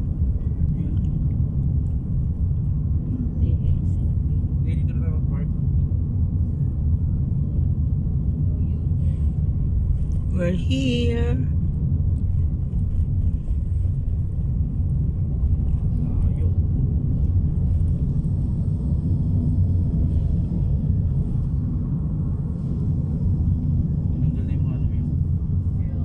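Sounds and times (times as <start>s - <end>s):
car engine and road noise: 0.0s - 26.0s.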